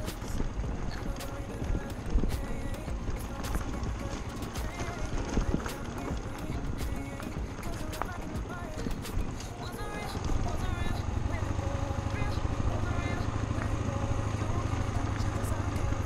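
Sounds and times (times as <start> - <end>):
wind on camera: 0.0 - 7.7
knocks and rattles over bumps: 0.0 - 16.0
motorcycle engine rumble: 0.0 - 16.0.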